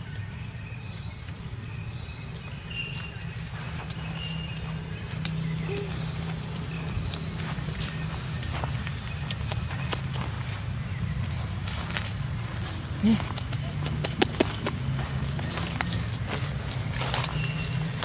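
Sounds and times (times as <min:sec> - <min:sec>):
high insect tone: 0:00.0 - 0:18.0
footsteps crunching through dry leaves: 0:02.3 - 0:13.1, 0:14.5 - 0:18.0.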